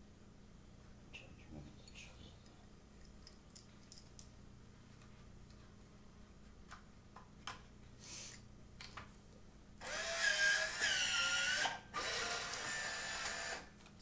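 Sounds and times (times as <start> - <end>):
small electric motor running: 9.8 - 13.6.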